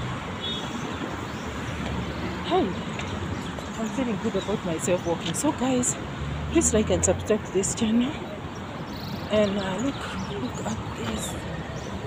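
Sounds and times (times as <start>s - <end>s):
road traffic: 0.0s - 12.0s.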